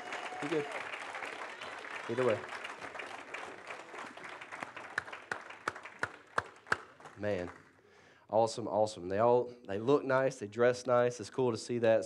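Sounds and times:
crowd applauding: 0:00.0 - 0:07.8.

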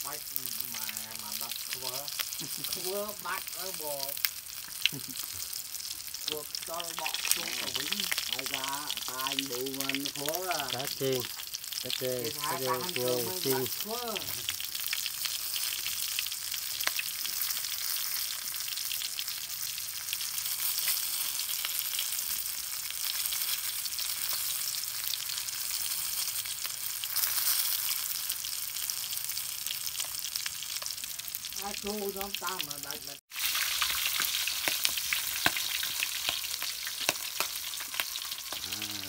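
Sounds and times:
fish sizzling in hot oil: 0:00.0 - 0:39.0.

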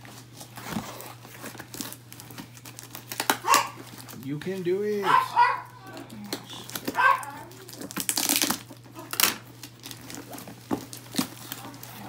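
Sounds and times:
paper and cardboard tearing: 0:00.0 - 0:12.0.

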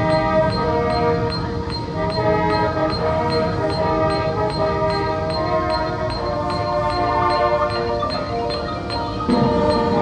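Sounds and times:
marching band horn chords: 0:00.0 - 0:10.0
metronome click: 0:00.0 - 0:10.0.

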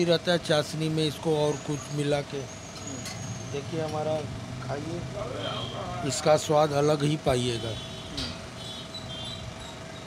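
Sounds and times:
steady background noise: 0:00.0 - 0:10.0
man speaking: 0:03.6 - 0:07.9.

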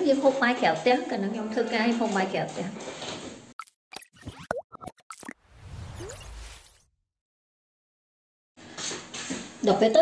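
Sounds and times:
cartoon plop and pop effects: 0:03.6 - 0:05.4.

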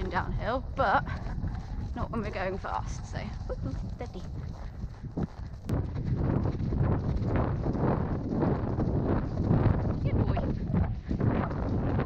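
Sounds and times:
pony hoofbeats on wet grass: 0:00.0 - 0:12.0
wind buffeting microphone: 0:00.0 - 0:12.0.

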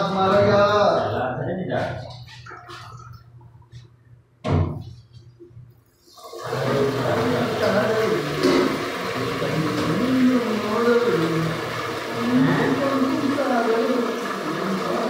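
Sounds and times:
people's voices: 0:06.4 - 0:15.0.

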